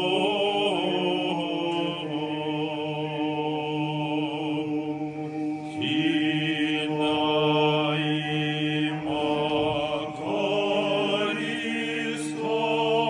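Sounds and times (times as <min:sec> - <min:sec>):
voices singing liturgical chant: 0:00.0 - 0:13.0.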